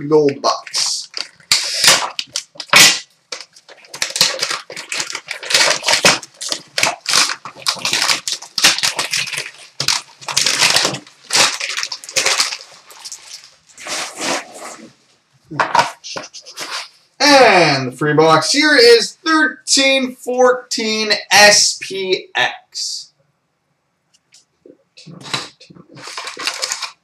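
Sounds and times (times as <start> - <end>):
foil pouch crinkling and tearing: 0.5 - 14.4, 25.3 - 27.0.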